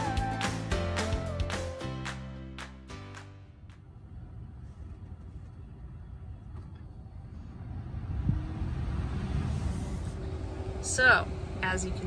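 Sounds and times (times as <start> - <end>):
fan whine rising in pitch: 3.4 - 12.0
blower fan air rushing: 3.8 - 12.0.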